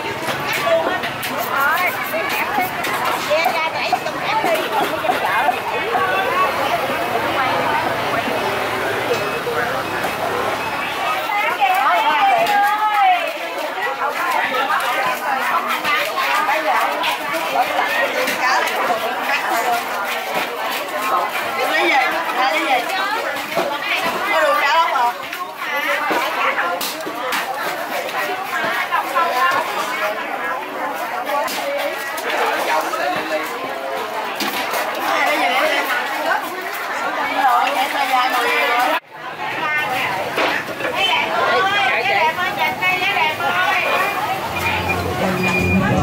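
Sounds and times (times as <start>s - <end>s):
chatter of many voices: 0.0s - 46.0s.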